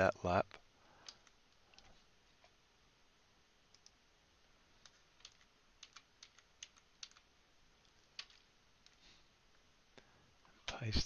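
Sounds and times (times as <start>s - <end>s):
computer keyboard and mouse clicks: 1.0s - 1.9s, 3.7s - 4.0s, 4.8s - 9.0s.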